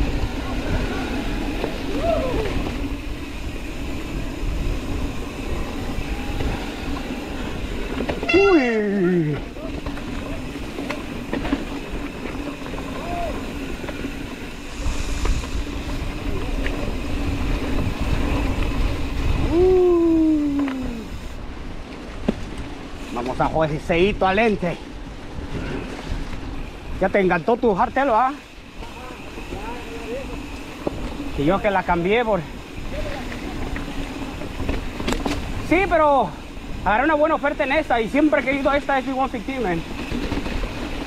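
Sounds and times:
bike tyres rolling on dirt trail: 0.0s - 41.0s
person crying out: 1.9s - 2.6s, 8.3s - 9.5s, 19.4s - 21.1s.

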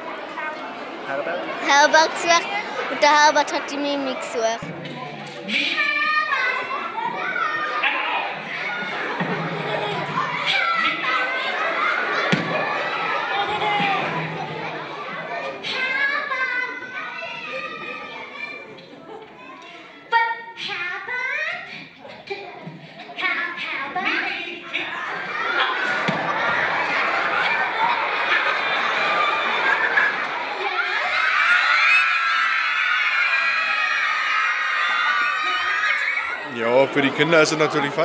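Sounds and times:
children calling out together: 1.6s - 4.6s
children shouting together: 5.6s - 18.8s, 23.9s - 36.6s.

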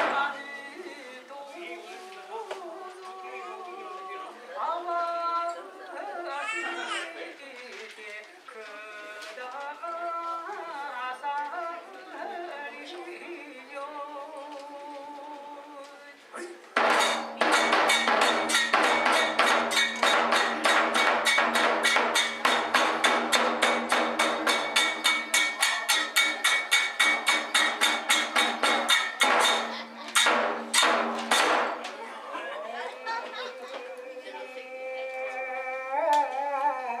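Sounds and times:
taiko drum beat: 16.8s - 31.8s
small hand cymbals: 17.0s - 31.6s.

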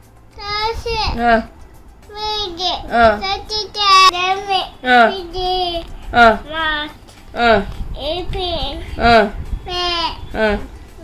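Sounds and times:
toddler chanting sing-song: 2.1s - 7.0s, 7.8s - 9.0s, 9.6s - 10.4s.

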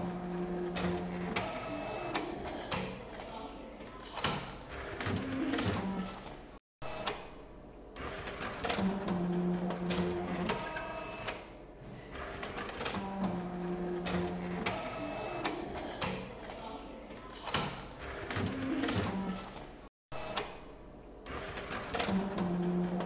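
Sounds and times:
printer motor hum: 0.0s - 3.2s, 8.0s - 11.6s, 12.2s - 16.5s, 21.2s - 23.0s.

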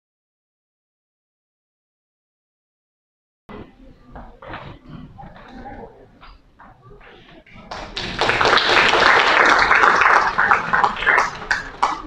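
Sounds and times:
indistinct low voices: 3.5s - 12.0s.

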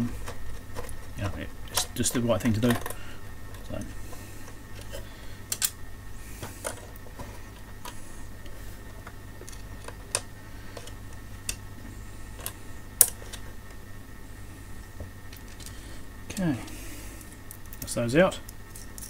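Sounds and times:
steady low hum: 0.0s - 19.0s.

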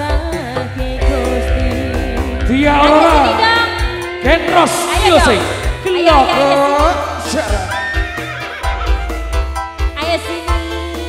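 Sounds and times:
drums and bass beat: 0.0s - 11.0s
live band playing: 0.0s - 11.0s
high sliding melody: 1.0s - 9.7s.

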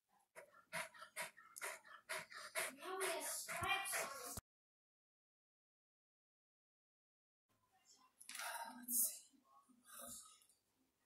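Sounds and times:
dog panting: 0.3s - 4.4s.

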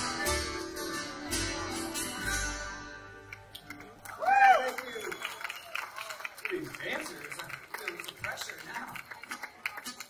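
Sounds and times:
audience chatting: 0.0s - 10.0s.

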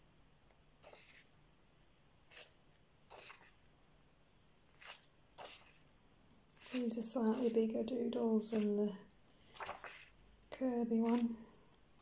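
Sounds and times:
paper pages turning: 6.6s - 7.6s, 9.6s - 10.1s, 11.0s - 11.4s.

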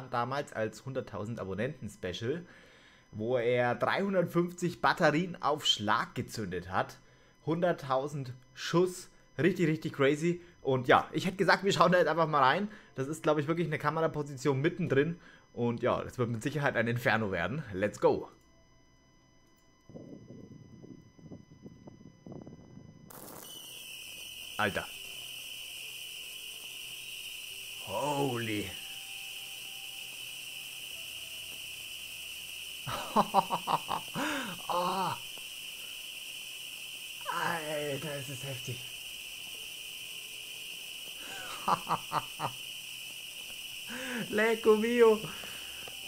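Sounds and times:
muffled firework pops and crackles: 23.1s - 24.4s, 43.0s - 43.7s
fireworks rushing hiss: 23.1s - 46.0s
man laughing: 32.9s - 35.2s, 41.2s - 42.6s.

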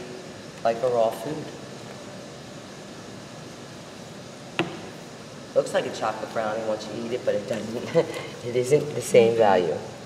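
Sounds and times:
low room hiss: 0.0s - 10.0s.

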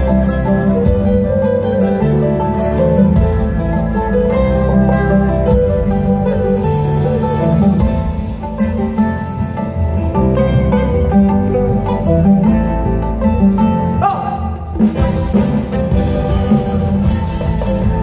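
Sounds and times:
live band music: 0.0s - 18.0s.

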